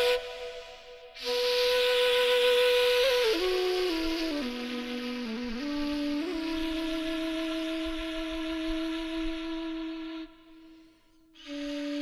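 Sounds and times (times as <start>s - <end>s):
flute holding a long note: 0.0s - 12.0s.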